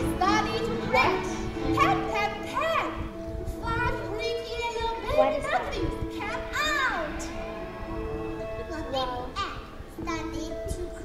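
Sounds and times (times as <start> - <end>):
background music with held notes: 0.0 - 11.0
child speaking: 1.7 - 7.2, 8.6 - 11.0.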